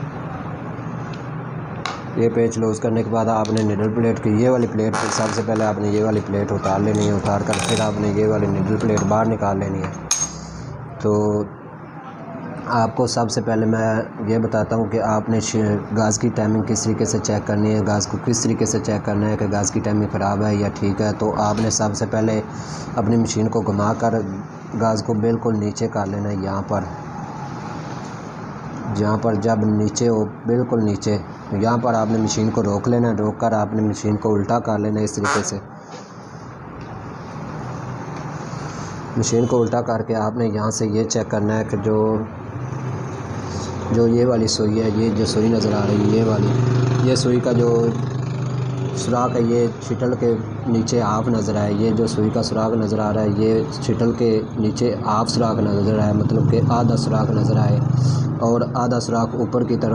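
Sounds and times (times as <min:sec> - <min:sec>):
metallic clink with ringing: 0:10.1 - 0:10.5.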